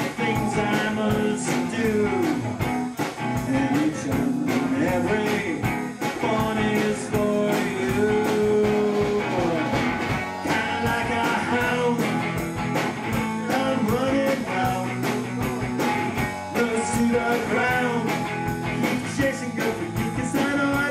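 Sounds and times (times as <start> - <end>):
electric guitar lead melody: 0.0 - 20.9
live band playing: 0.0 - 20.9.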